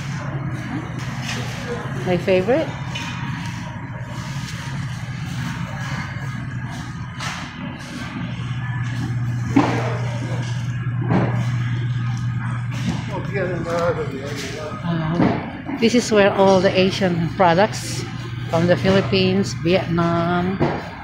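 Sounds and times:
steady low hum: 0:00.0 - 0:21.0
indistinct voices: 0:08.0 - 0:21.0.

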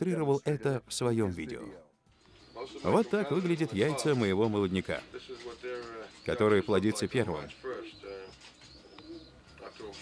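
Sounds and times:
pigeons cooing: 0:02.3 - 0:10.0.

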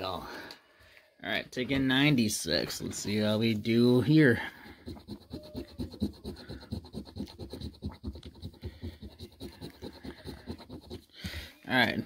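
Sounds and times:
coin scraping scratch card: 0:04.4 - 0:11.1.

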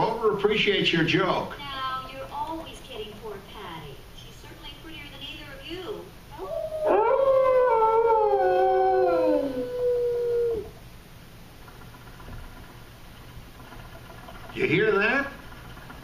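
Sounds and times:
recorded dog howl: 0:06.4 - 0:10.8.

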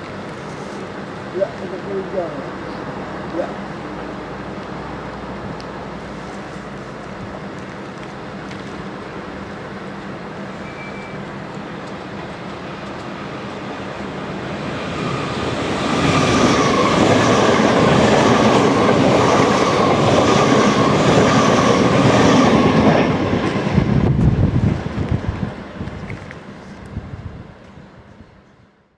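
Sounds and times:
electric train passing at speed: 0:00.0 - 0:28.9.

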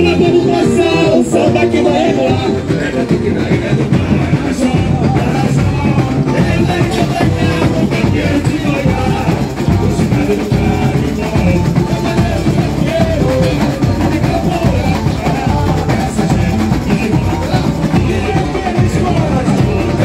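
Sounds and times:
man singing through microphone: 0:00.0 - 0:20.0
samba drum section playing: 0:00.0 - 0:20.0.

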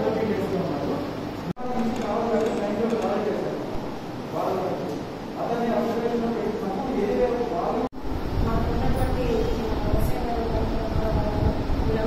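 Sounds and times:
loud steady rumbling: 0:03.3 - 0:12.0.

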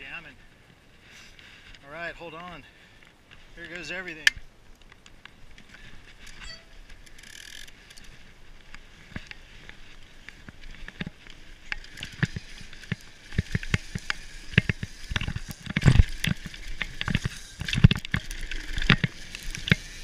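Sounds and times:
wind and tyre noise: 0:00.0 - 0:20.0
bike rattling and knocking: 0:09.0 - 0:20.0.

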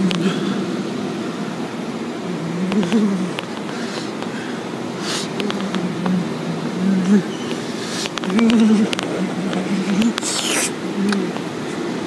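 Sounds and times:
steady car wash drone: 0:00.0 - 0:12.0
burst of hiss: 0:05.0 - 0:05.4, 0:10.2 - 0:10.8
water spray: 0:09.9 - 0:10.8.

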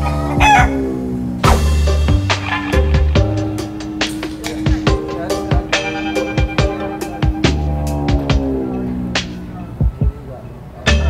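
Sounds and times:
background music: 0:00.0 - 0:11.0
chicken calling: 0:00.0 - 0:11.0.

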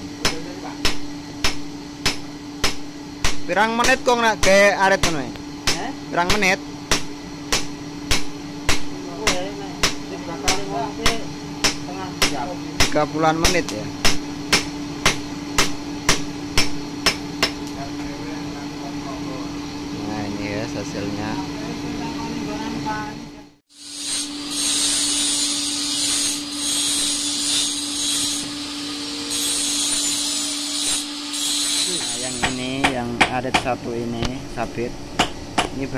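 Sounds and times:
hammer striking hot steel on anvil: 0:00.2 - 0:17.8, 0:23.9 - 0:33.7
angle grinder grinding steel: 0:23.7 - 0:32.8.

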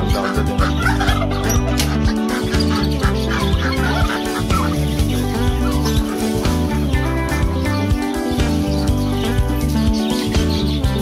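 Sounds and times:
background music with bass: 0:00.0 - 0:11.0
chickens clucking: 0:00.0 - 0:11.0.

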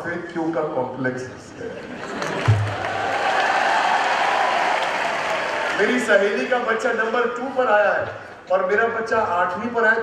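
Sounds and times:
audience applauding: 0:02.0 - 0:06.5.

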